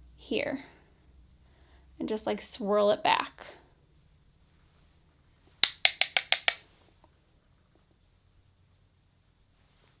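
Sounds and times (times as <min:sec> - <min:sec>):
brush tapping plastic compact: 0:05.6 - 0:06.6.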